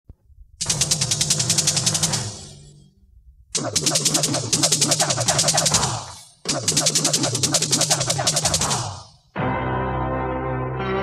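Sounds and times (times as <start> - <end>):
fast electronic drum roll: 3.6 - 9.0.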